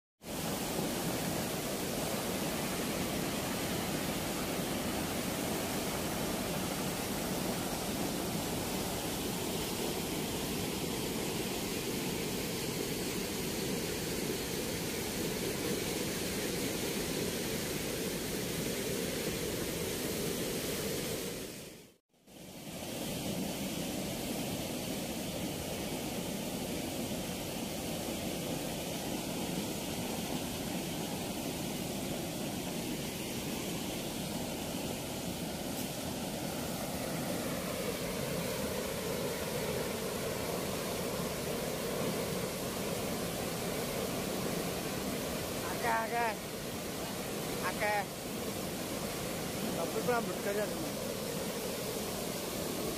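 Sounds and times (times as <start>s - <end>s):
water rushing through sluice gates: 0.2s - 21.5s, 22.6s - 52.9s.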